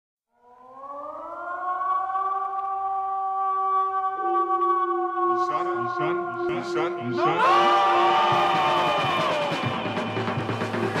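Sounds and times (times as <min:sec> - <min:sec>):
air-raid siren wailing: 0:00.3 - 0:10.7.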